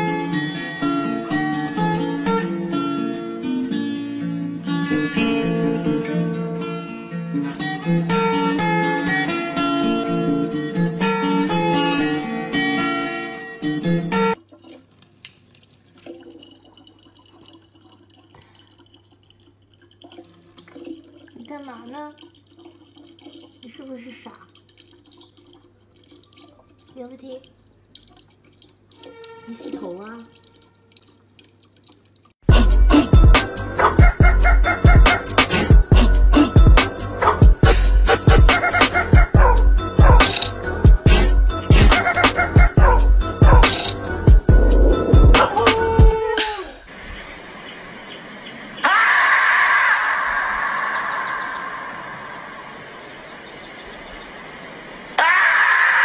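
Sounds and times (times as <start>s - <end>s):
tap water trickling into bottle: 14.4s - 32.4s
short wavering voice: 44.5s - 46.7s
marmot screaming: 44.6s - 46.4s, 48.8s - 52.0s, 55.2s - 56.0s.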